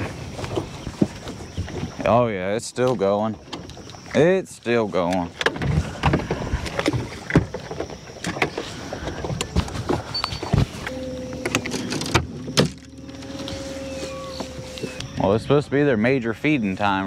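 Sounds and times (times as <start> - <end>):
water slapping boat hull: 0.0 - 15.5
electric motor hum: 9.4 - 17.0.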